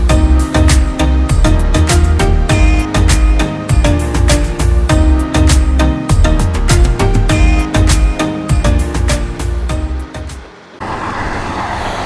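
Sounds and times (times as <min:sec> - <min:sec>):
background music: 0:00.0 - 0:10.7
vehicle noise rushing: 0:06.6 - 0:12.0.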